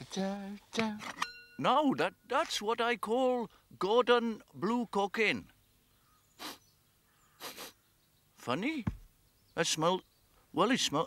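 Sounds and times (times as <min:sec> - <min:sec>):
man sniffing: 0:06.4 - 0:06.7, 0:07.4 - 0:07.8.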